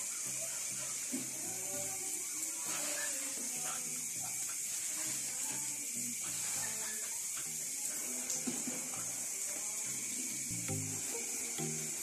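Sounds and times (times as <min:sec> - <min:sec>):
steady high hiss: 0:00.0 - 0:12.0
short held musical notes: 0:10.5 - 0:12.0.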